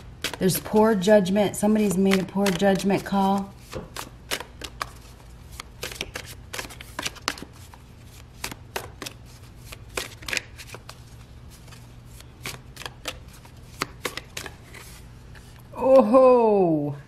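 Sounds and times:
cards being shuffled: 0.2s - 1.0s, 1.6s - 15.6s.

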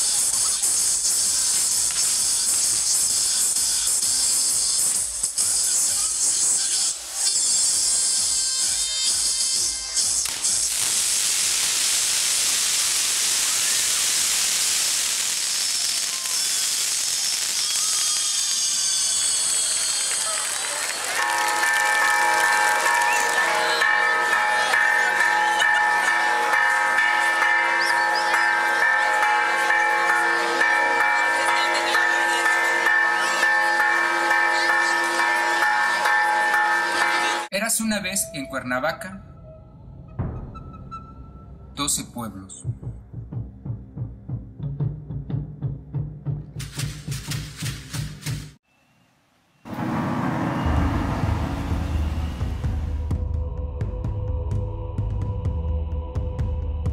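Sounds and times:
fireworks hissing: 0.0s - 22.1s
church bells ringing: 21.1s - 37.5s, 49.7s - 52.8s.

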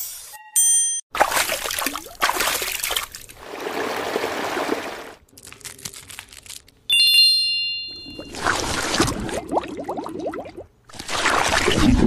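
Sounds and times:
bell-like ding: 0.6s - 1.0s, 6.9s - 8.3s
rustling squishy noise: 5.2s - 6.9s.

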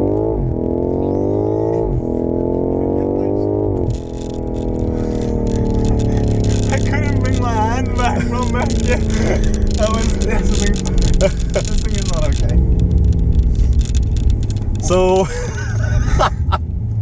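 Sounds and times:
car engine accelerating: 0.0s - 17.0s
people laughing: 7.7s - 9.5s, 15.2s - 16.6s.

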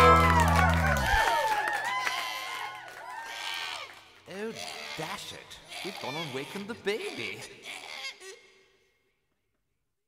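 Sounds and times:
backing music: 0.0s - 1.2s
children shouting and cheering: 0.0s - 3.9s
man speaking: 4.3s - 7.6s.

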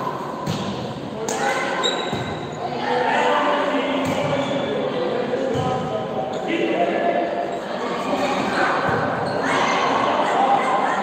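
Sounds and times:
indistinct voices echoing: 0.0s - 11.0s
volleyball slaps: 0.4s - 1.4s.

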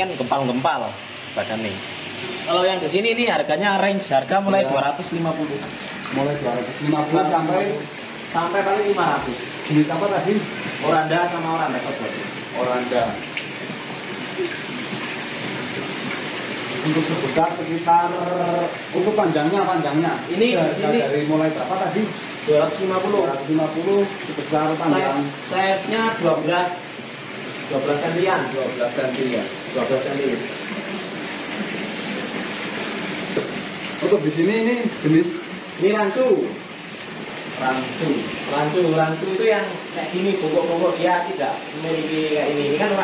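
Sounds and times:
water splashing in fish tank: 0.0s - 43.0s.

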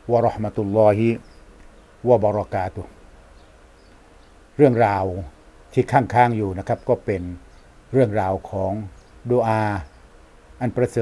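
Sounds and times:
man speaking: 0.0s - 1.2s, 2.0s - 2.9s, 4.6s - 9.9s, 10.6s - 11.0s.

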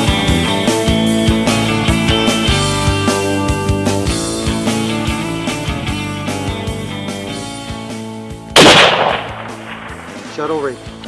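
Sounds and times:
guitar background music: 0.0s - 11.0s
rifle shot with echo: 8.6s - 10.6s.

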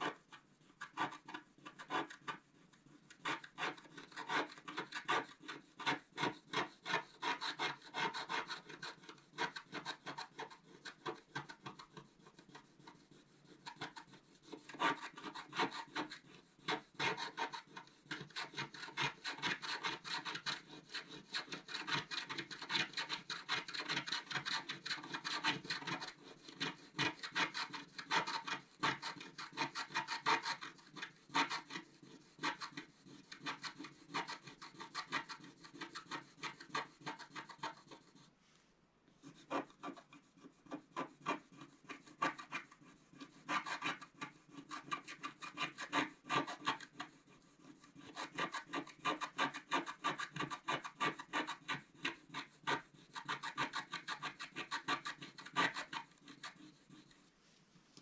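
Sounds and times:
stylus scratching coated sheet: 0.0s - 38.6s, 39.2s - 58.0s.

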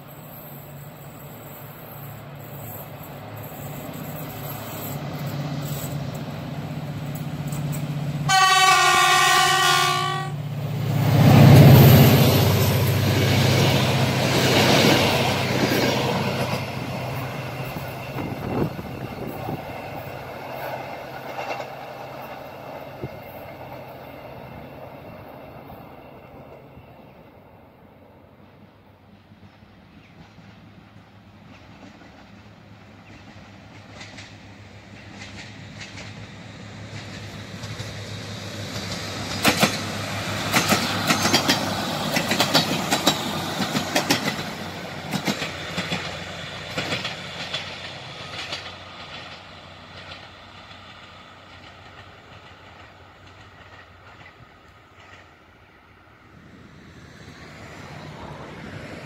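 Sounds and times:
train engine and wheel noise: 0.0s - 59.0s
train horn blast: 8.3s - 10.4s.

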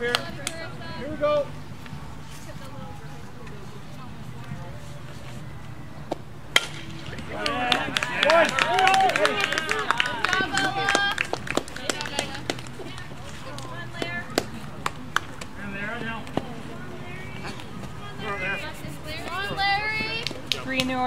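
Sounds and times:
bat cracking against ball: 6.1s - 8.3s
high voices shouting and cheering: 7.1s - 11.4s.

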